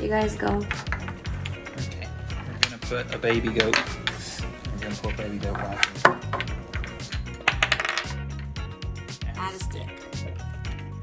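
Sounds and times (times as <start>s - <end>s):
game pieces clicking on board: 0.6s - 1.6s, 2.6s - 4.3s, 4.9s - 8.2s.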